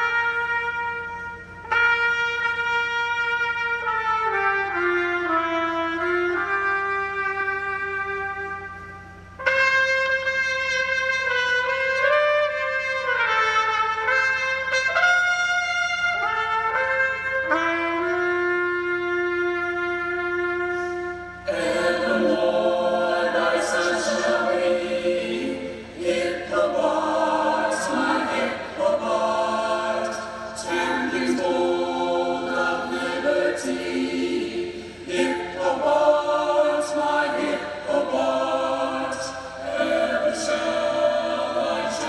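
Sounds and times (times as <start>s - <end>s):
choir singing unaccompanied: 21.4s - 42.0s.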